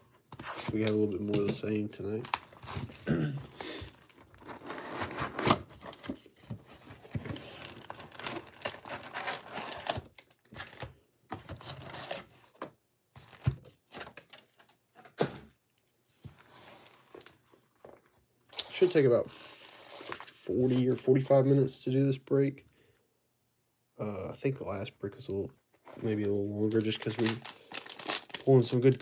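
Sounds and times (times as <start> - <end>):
card packs rustling and knocking: 0.0 - 15.6, 25.8 - 29.0
shrink wrap tearing and crinkling: 2.2 - 5.6, 7.4 - 10.8, 26.0 - 29.0.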